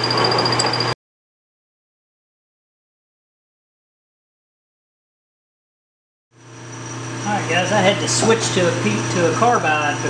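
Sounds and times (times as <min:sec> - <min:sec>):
low machine hum with high whine: 0:06.4 - 0:10.0
man talking: 0:07.3 - 0:10.0.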